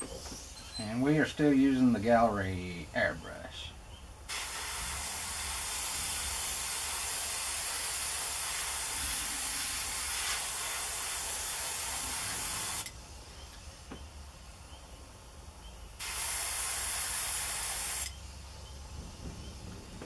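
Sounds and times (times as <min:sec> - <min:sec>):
airbrush spraying hiss: 0:04.3 - 0:14.6, 0:16.0 - 0:18.6.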